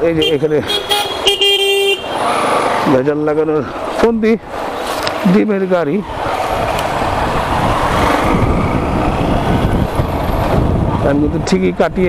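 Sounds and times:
wind rushing: 3.8s - 12.0s.

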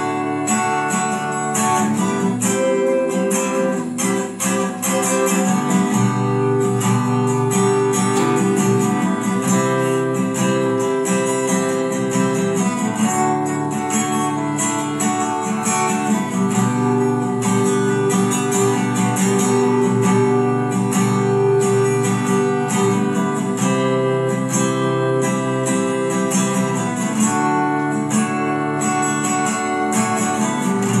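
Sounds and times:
acoustic guitar strumming: 0.0s - 31.0s.

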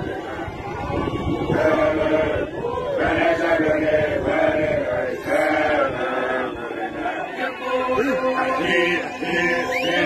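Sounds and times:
men chanting in unison: 0.0s - 10.0s.

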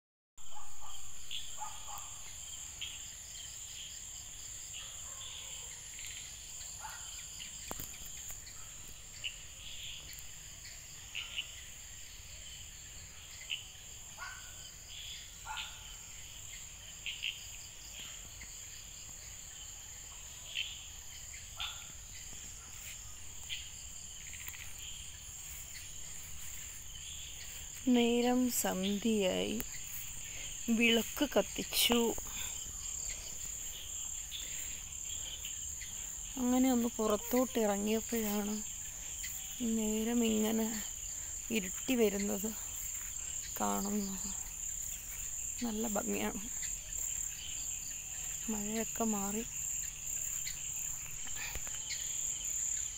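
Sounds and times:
insect chirps: 0.4s - 52.9s
insects trilling: 0.4s - 52.9s.

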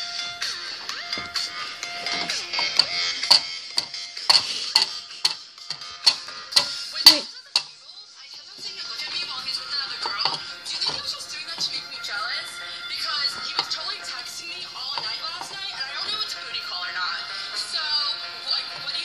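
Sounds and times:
background music: 0.0s - 19.0s
plastic figurines tapping on glass: 2.0s - 7.7s, 9.1s - 11.8s.

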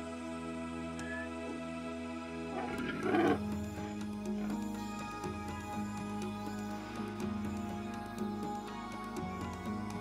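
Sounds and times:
background music: 0.0s - 10.0s
donkey braying: 2.5s - 3.4s.

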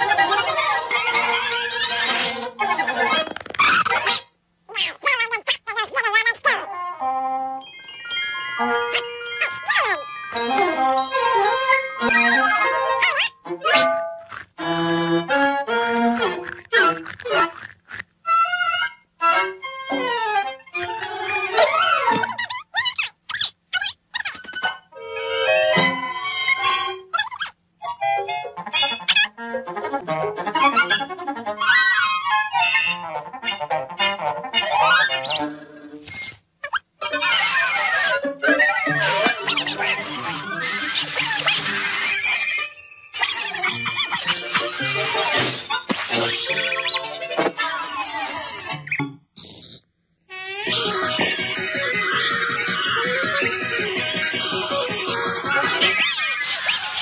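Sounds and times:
cartoon soundtrack music: 4.0s - 17.6s, 27.8s - 36.0s, 37.0s - 49.0s, 50.3s - 57.0s.

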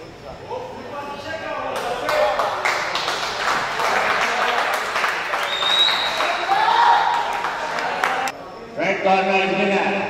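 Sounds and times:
audience applauding: 1.8s - 8.3s.

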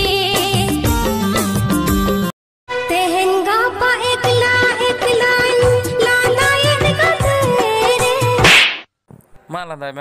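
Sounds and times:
music with singing: 0.0s - 8.5s.

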